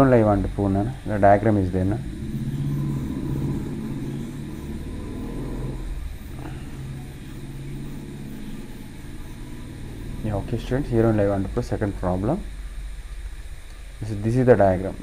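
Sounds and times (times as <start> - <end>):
low engine-like rumble: 0.0 - 15.0.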